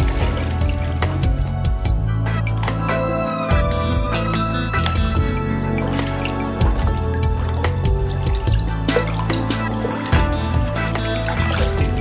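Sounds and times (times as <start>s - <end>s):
water splashing in a sink: 0.0s - 1.8s, 2.4s - 3.2s, 4.8s - 12.0s
background music with low notes: 0.0s - 12.0s.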